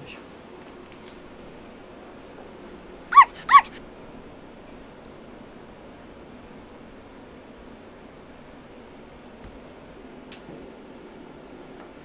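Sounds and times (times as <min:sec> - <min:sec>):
dog yelping: 0:03.0 - 0:03.8.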